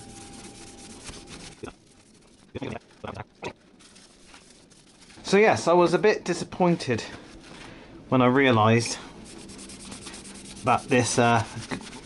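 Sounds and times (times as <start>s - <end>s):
paper towel rubbing metal pipe: 0.0s - 2.5s, 3.8s - 5.4s, 9.2s - 12.0s.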